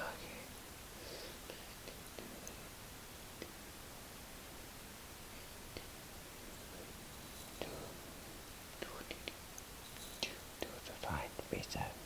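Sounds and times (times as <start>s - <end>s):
person whispering: 0.0s - 0.5s, 7.6s - 8.1s, 8.8s - 9.4s, 10.2s - 12.0s.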